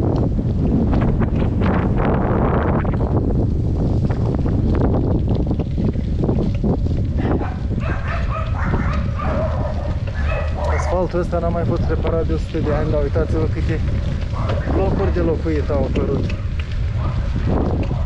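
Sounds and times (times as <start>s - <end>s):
wind buffeting microphone: 0.0s - 18.0s
dog barking: 7.2s - 11.2s, 14.3s - 15.0s, 16.4s - 18.0s.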